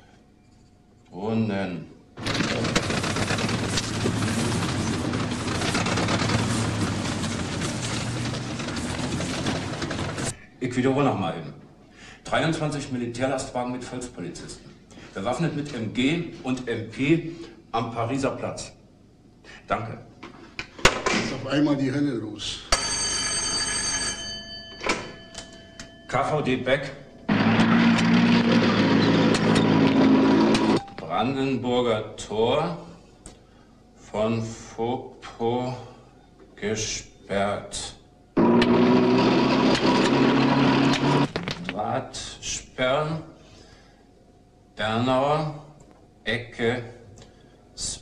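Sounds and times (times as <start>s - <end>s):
dense clattering noise: 2.2s - 10.3s
telephone bell ringing: 22.7s - 26.1s.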